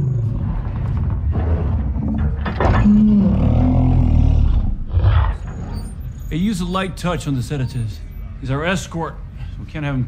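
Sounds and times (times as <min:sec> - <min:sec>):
deep rumbling ape growl: 0:00.0 - 0:05.9.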